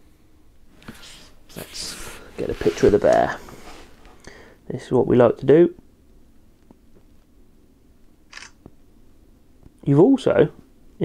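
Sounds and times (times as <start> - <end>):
camera shutter snap: 8.3 - 8.6.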